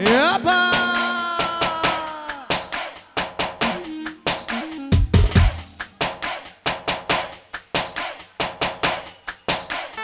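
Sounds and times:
drums playing: 0.0s - 10.0s.

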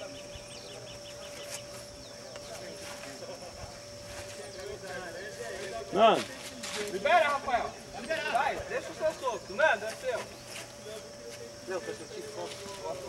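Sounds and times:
distant men's voices: 0.0s - 13.0s
outdoor background sound: 0.0s - 13.0s.

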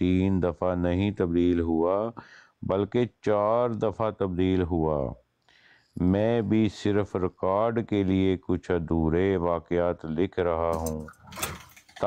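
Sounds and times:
small clicks and rattles: 10.8s - 12.0s.

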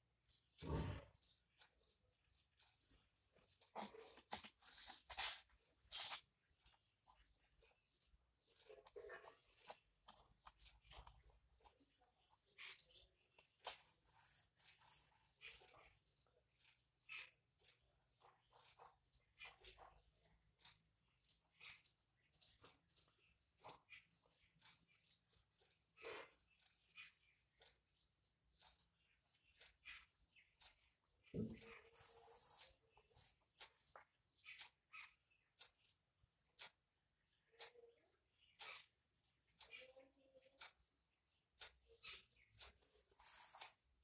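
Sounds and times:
ballpoint pen scratching on paper: 3.7s - 6.3s.

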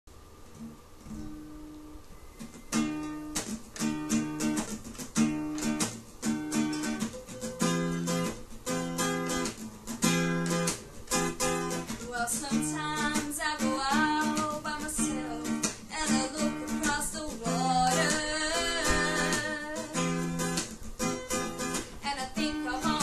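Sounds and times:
acoustic guitar strumming: 0.5s - 23.0s.

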